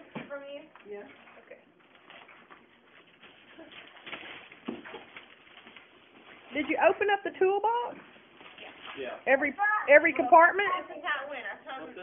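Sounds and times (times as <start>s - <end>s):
rustling and handling noises: 0.0s - 9.2s.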